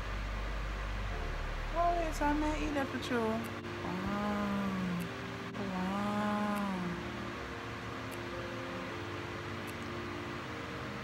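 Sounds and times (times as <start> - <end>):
faint steady background tones: 0.0 - 11.0
woman humming: 3.8 - 7.1.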